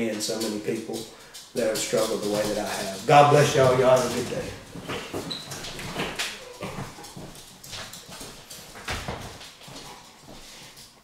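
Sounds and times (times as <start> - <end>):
footsteps: 0.0 - 11.0
chair movement knocks and shuffles: 2.8 - 9.4.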